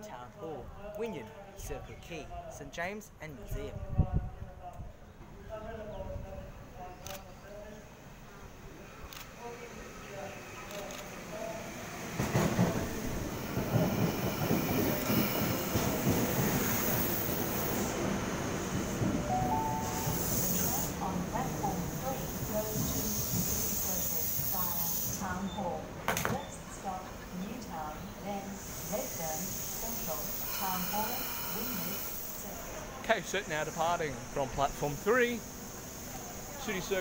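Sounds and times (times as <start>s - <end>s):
electric train running: 10.0s - 25.4s, 27.6s - 37.0s
squealing train brakes: 13.9s - 18.0s, 19.3s - 25.4s, 28.6s - 32.6s.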